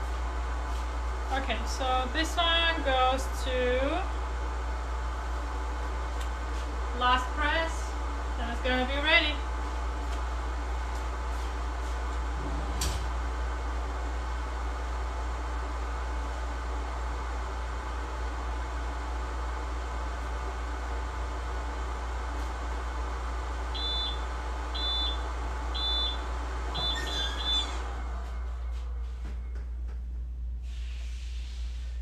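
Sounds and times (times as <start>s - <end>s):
machinery hum: 0.0s - 32.0s
heat press timer beeps: 23.8s - 25.2s, 25.8s - 27.7s.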